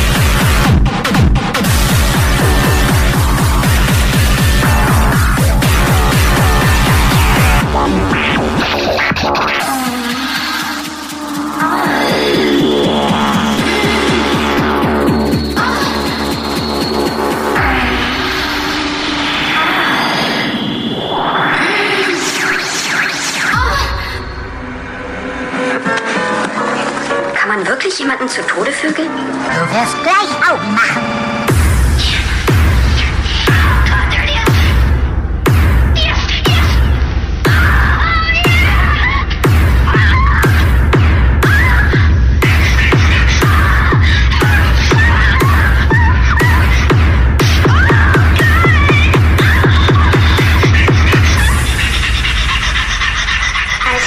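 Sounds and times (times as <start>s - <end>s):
pounding kick drum: 0.0s - 8.8s, 31.5s - 51.8s
sharp electronic hits: 0.0s - 8.8s
rapid high ticking rhythm: 0.0s - 19.6s, 31.5s - 54.0s
deep bass drone: 0.0s - 22.3s, 31.4s - 53.7s
voice sample: 1.5s - 24.7s, 29.5s - 54.0s
sustained synth tones: 1.6s - 25.6s.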